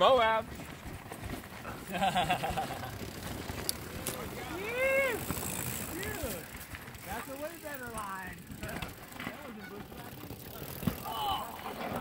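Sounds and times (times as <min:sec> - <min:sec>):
bike tyres rolling over gravel: 0:00.0 - 0:12.0.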